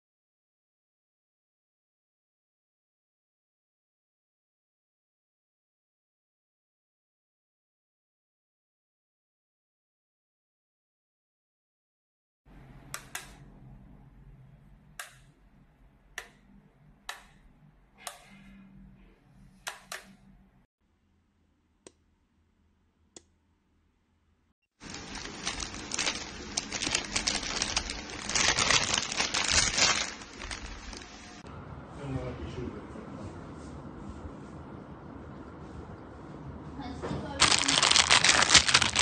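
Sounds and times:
light switch clicking: 12.9 - 13.4, 15.0 - 15.3
plastic bags crinkling: 24.8 - 31.4, 37.4 - 39.0.

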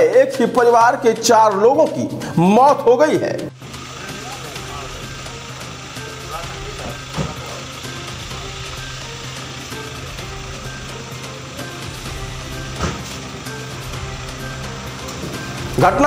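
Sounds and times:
soft background music: 0.0 - 16.0
car engine idling: 3.5 - 16.0.

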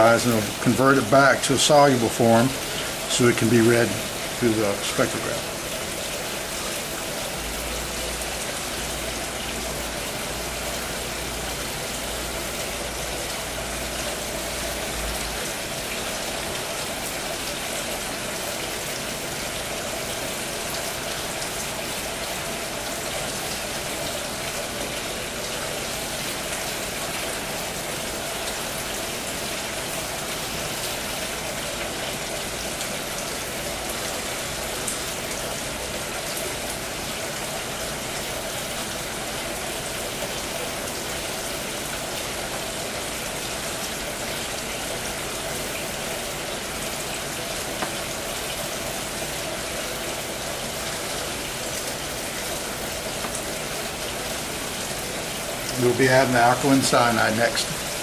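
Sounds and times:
steady hiss: 0.0 - 12.6.

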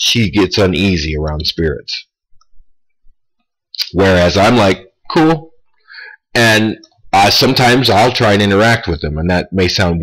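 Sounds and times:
man speaking: 0.0 - 2.2, 3.8 - 10.0
mouth click: 3.7 - 4.0.

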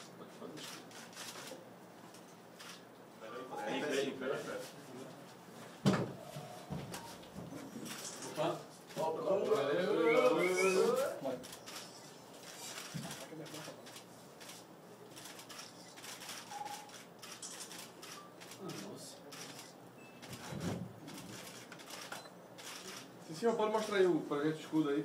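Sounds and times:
camera shutters clicking: 0.6 - 1.6, 15.2 - 20.5, 21.1 - 23.1.

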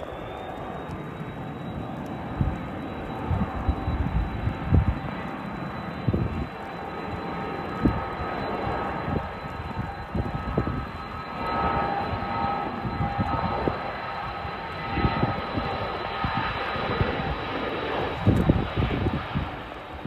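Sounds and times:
distant jet engines rumbling: 0.0 - 20.0
faint engine whine: 0.0 - 20.0
wind buffeting microphone: 0.5 - 20.0.

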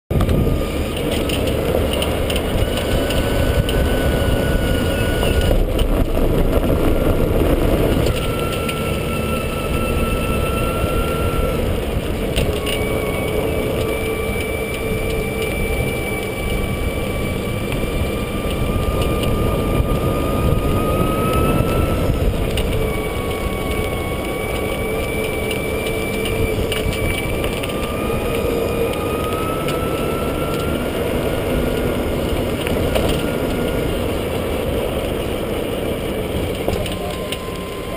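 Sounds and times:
electric motor whine: 0.1 - 37.9
golf cart tyre and wind rumble: 0.1 - 37.9.

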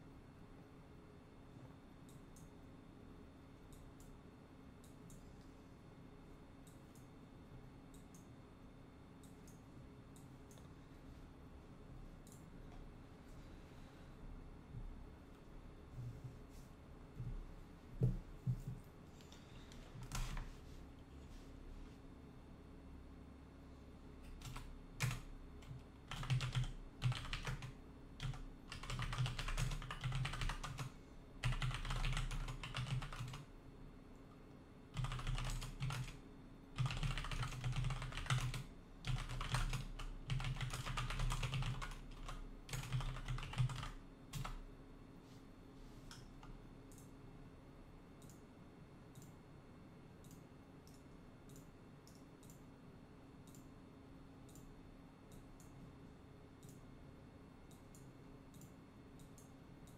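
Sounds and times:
faint keyboard clicks: 9.2 - 10.8, 12.2 - 12.9, 48.2 - 48.4, 49.1 - 49.4, 50.2 - 52.7, 53.4 - 53.7, 56.6 - 56.9, 57.7 - 59.9
typing on computer keyboard: 20.0 - 20.5, 24.3 - 33.5, 35.0 - 36.2, 36.8 - 44.6.

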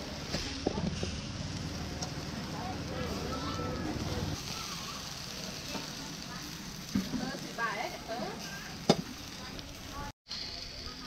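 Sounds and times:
frogs sizzling on charcoal grill: 0.0 - 11.0.

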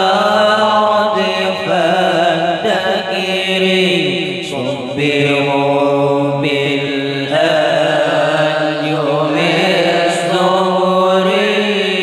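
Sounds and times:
men chanting a devotional poem: 0.0 - 12.0.

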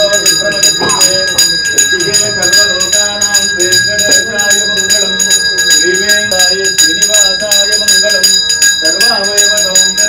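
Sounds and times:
hand bell ringing rapidly: 0.0 - 10.0
man chanting: 0.0 - 10.0.

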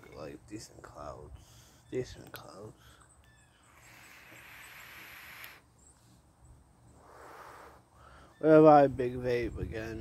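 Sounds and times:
airy hiss of vape draw: 3.9 - 5.6.

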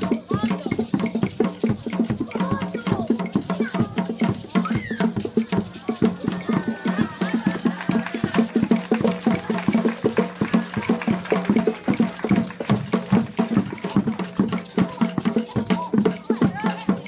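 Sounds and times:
children playing hand percussion: 0.0 - 17.0.

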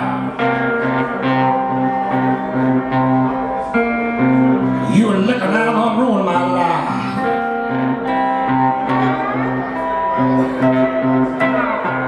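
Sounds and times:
electric guitar blues riff: 0.0 - 12.0.

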